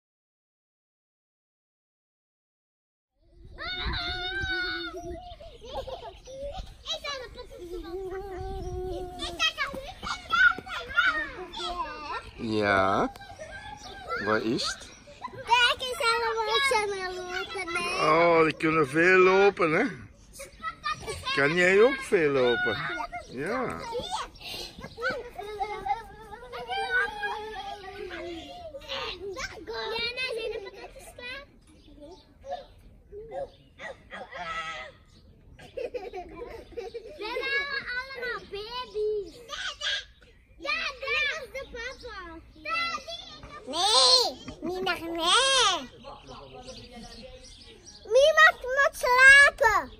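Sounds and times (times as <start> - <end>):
young children calling and crying: 3.2 - 49.9.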